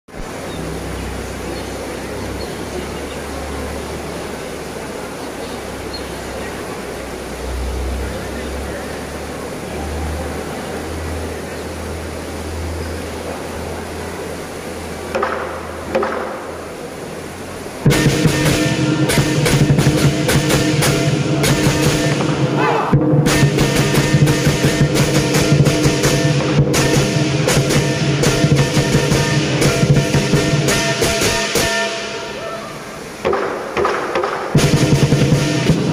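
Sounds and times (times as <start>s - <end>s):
crowd murmur: 0.1s - 33.2s
drum cymbals and gong ensemble: 17.8s - 35.9s.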